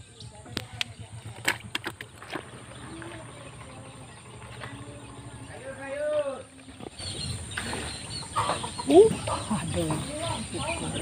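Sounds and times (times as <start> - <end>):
chickens clucking: 0.5 - 11.0.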